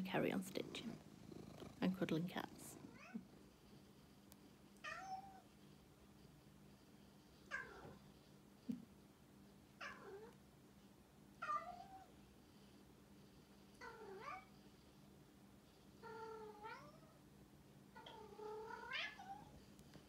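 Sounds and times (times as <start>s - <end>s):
cat meowing: 4.8s - 5.4s, 18.0s - 19.5s.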